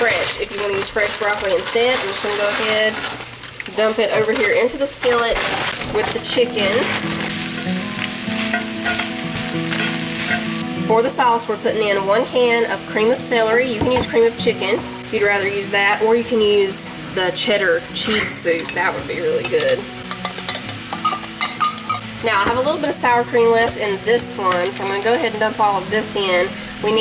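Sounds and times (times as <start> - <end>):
food sizzling in oil: 0.0 - 27.0.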